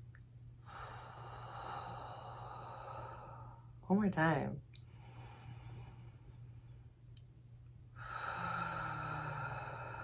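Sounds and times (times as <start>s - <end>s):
slow breath out: 0.6s - 3.8s, 4.8s - 6.4s, 8.0s - 10.0s.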